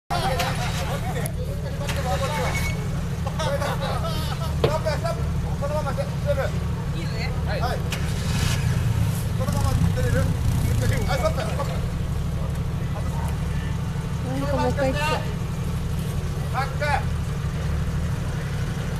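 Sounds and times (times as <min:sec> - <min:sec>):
off-road engine running: 0:00.1 - 0:18.9.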